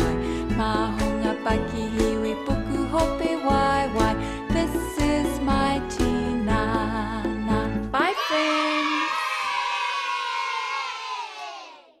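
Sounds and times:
crowd of children cheering: 8.1s - 12.0s.

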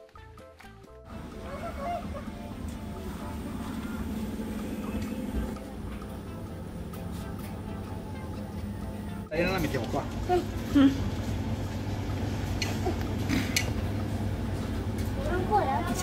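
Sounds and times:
background music: 0.0s - 10.9s
washing machines humming: 1.0s - 16.0s.

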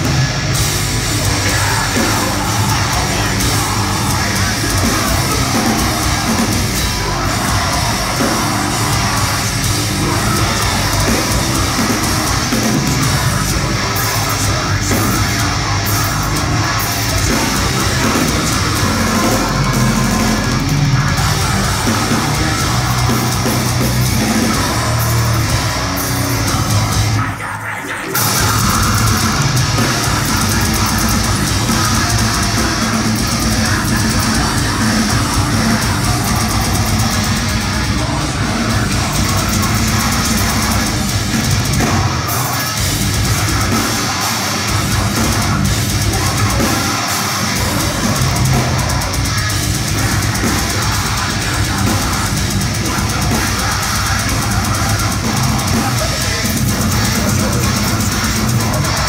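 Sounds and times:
bass guitar: 0.0s - 27.6s, 28.2s - 59.0s
distorted guitars: 0.0s - 59.0s
pounding drums: 0.0s - 59.0s.

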